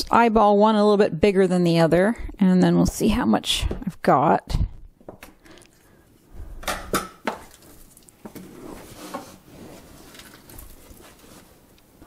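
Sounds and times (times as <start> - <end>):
soft dough scraping and handling: 7.5 - 12.0.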